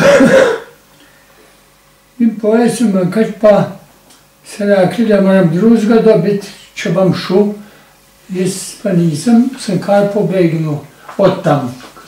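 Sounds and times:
man clearing his throat: 0.0 - 0.8.

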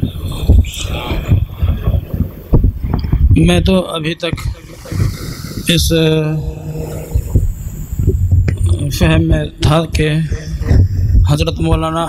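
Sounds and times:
low thumps on microphone: 0.0 - 12.0.

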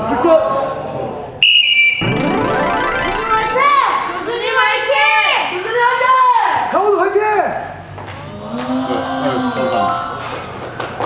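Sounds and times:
rising pitch sound effect: 2.0 - 4.4, 9.6 - 10.6
bright electronic ding: 9.6 - 10.5.

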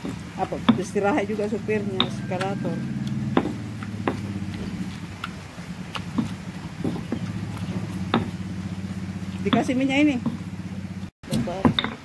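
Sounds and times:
pestle knocking against stone: 0.0 - 1.0, 1.8 - 4.8, 6.1 - 8.4, 9.5 - 10.4, 11.3 - 12.0
pestle crushing tomatoes: 0.0 - 12.0
steady low drone: 1.5 - 11.1.

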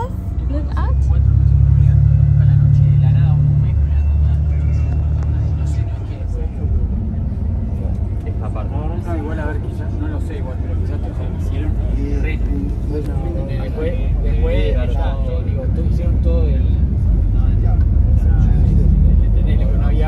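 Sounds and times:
bus engine rumbling: 0.0 - 20.0.

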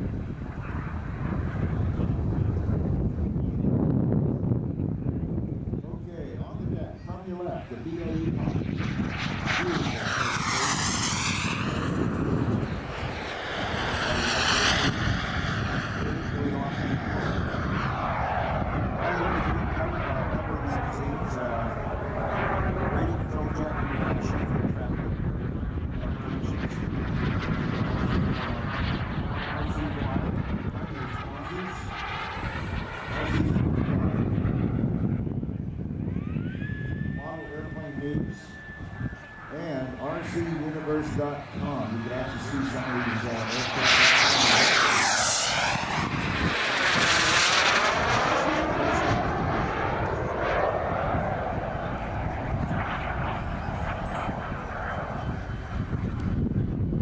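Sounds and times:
wind rumbling on microphone: 0.0 - 57.0
model jet turbine passing: 6.0 - 57.0.

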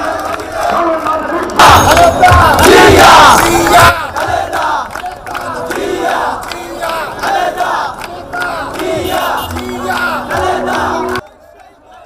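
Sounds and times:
hand claps: 0.0 - 11.2
crowd shouting slogans: 0.0 - 12.0.

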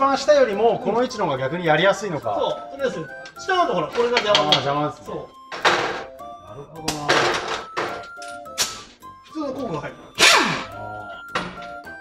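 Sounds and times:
person speaking: 0.0 - 5.4
background music: 0.0 - 12.0
sharp metallic clunk: 5.5 - 6.1.

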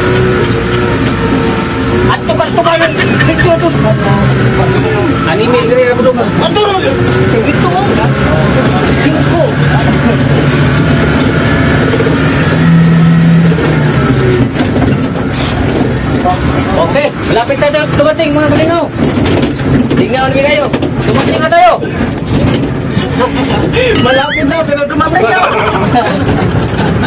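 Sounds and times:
vehicle engine and road drone: 0.0 - 27.0
people talking: 2.0 - 10.6, 16.1 - 19.0, 19.8 - 22.1, 23.0 - 27.0.

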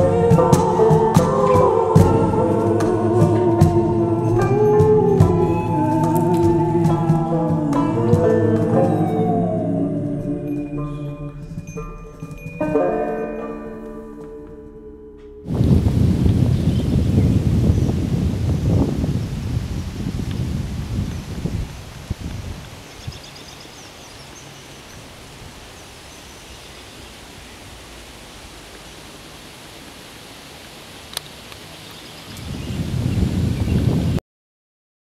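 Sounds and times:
low rumbling noise: 0.0 - 30.8
faint steady hiss: 15.5 - 34.0.

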